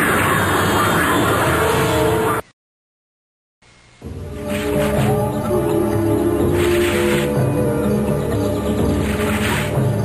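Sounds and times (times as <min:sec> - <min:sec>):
orchestral score: 0:04.1 - 0:10.0.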